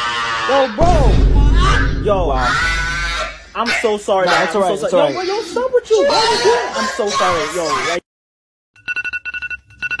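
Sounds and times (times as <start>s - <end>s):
digital alarm clock beeping: 8.8s - 10.0s.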